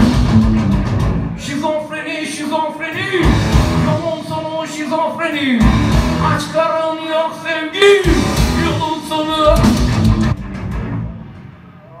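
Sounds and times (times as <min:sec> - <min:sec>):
heavy metal band chord: 0:03.2 - 0:04.4, 0:05.6 - 0:06.5, 0:08.0 - 0:11.6.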